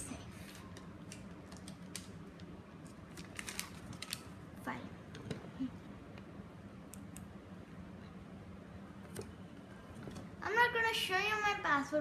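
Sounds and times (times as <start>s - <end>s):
paper handling: 3.1s - 4.3s.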